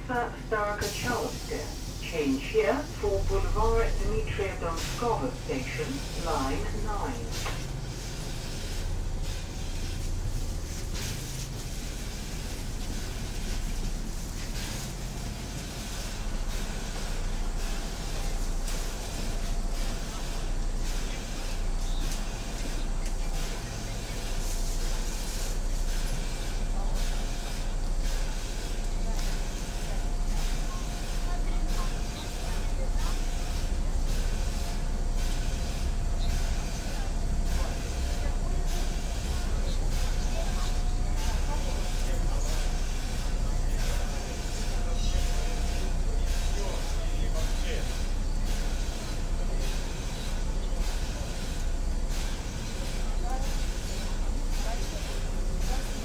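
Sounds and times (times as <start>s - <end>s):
metro train rumble and hiss: 0.0s - 56.0s.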